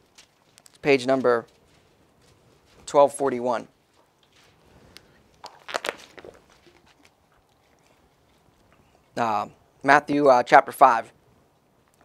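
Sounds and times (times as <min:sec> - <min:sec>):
plastic bottle crinkling: 0:04.4 - 0:07.9.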